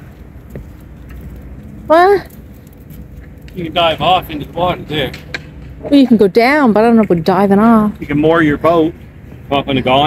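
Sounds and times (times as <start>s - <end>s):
low outdoor rumble: 0.0s - 10.0s
woman speaking: 1.9s - 2.3s, 5.8s - 8.0s.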